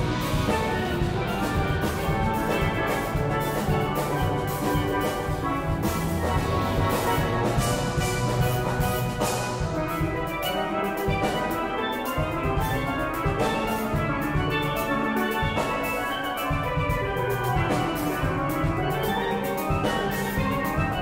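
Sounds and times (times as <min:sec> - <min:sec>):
drum kit beat: 0:00.0 - 0:21.0
steel band playing calypso: 0:00.0 - 0:21.0.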